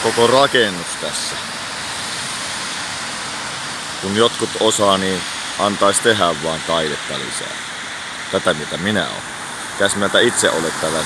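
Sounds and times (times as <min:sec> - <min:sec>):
street noise hiss: 0:00.0 - 0:11.0.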